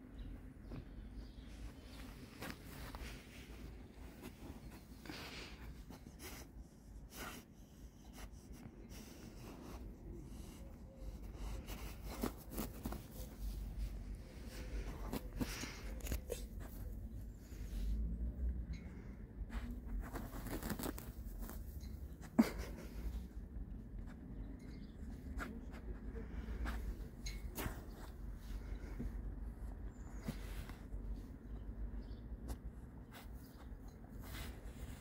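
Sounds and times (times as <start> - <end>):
dog sniffing: 0.6 - 18.0
rustling in grass: 19.5 - 21.9.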